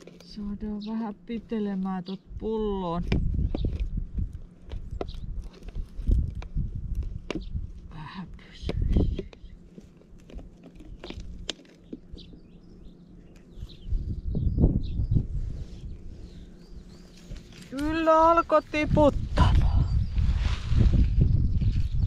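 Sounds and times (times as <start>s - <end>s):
wind rumbling on microphone: 2.2s - 9.6s, 13.5s - 22.0s
plastic bottle crinkling: 9.6s - 12.2s.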